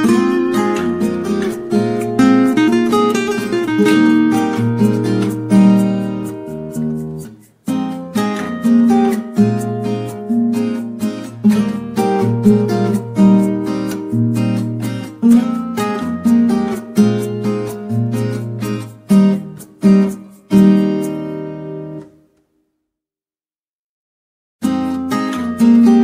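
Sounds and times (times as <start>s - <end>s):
acoustic guitar playing: 0.0s - 22.6s, 24.6s - 26.0s.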